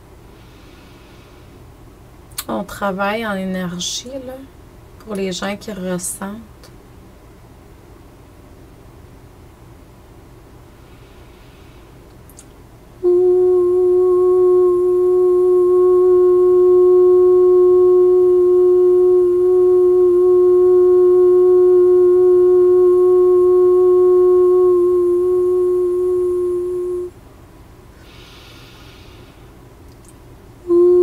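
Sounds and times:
woman drawing breath: 0:00.3 - 0:01.6, 0:10.8 - 0:12.0, 0:28.0 - 0:29.6
woman humming long note: 0:13.0 - 0:27.1, 0:30.6 - 0:31.0.

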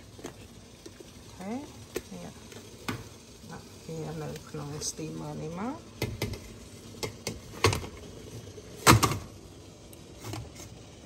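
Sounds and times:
steaming pot hiss: 0:00.0 - 0:11.0.

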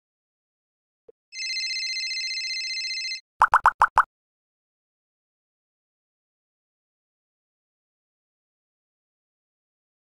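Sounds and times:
quick plopping blips: 0:03.4 - 0:04.1.

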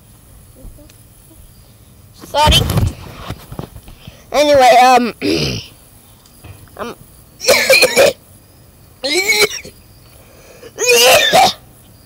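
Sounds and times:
boy coughing: 0:05.2 - 0:05.7, 0:07.4 - 0:08.2, 0:10.8 - 0:11.6.

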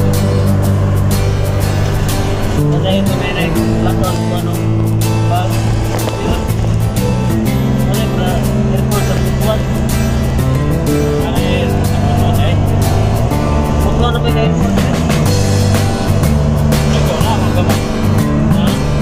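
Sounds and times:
music with steady beat and bass: 0:00.0 - 0:19.0.

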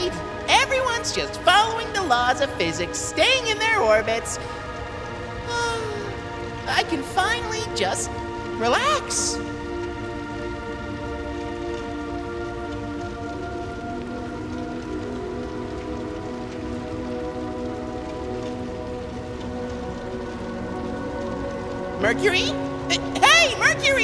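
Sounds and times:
calm background music chords: 0:00.0 - 0:24.0.

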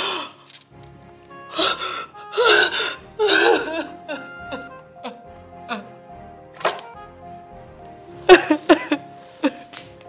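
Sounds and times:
background music sustained notes: 0:00.0 - 0:10.0
woman sobbing: 0:01.5 - 0:06.0, 0:08.3 - 0:09.6.

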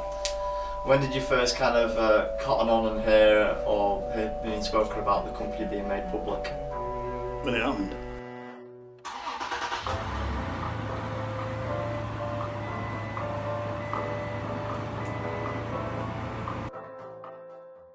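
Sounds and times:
music: 0:00.0 - 0:17.9
vehicle engine starting and running: 0:09.0 - 0:16.7.

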